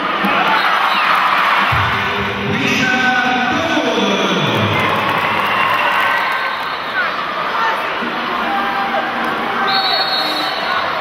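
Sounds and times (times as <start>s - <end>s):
music: 0.0s - 5.5s
crowd cheering: 0.0s - 11.0s.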